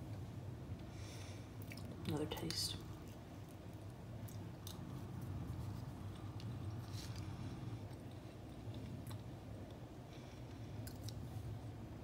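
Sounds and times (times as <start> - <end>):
steady low hum: 0.0 - 12.0
person chewing: 1.6 - 2.0, 2.9 - 9.8.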